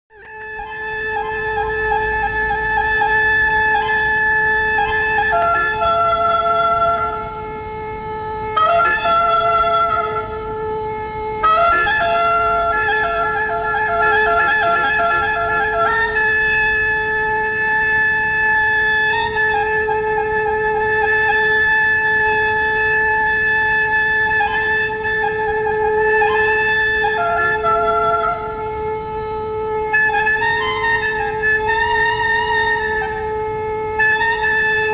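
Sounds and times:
steady drone tone: 0.1s - 34.9s
wind instrument long note: 0.1s - 34.9s
woodwind slow melody: 0.1s - 34.9s.

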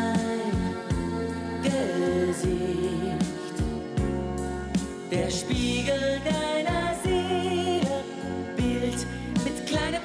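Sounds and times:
live band playing pop ballad: 0.0s - 10.0s.

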